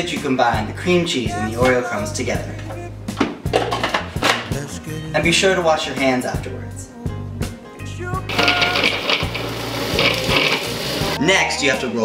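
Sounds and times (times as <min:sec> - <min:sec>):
background music: 0:00.0 - 0:12.0
food processor whirring: 0:08.3 - 0:11.2.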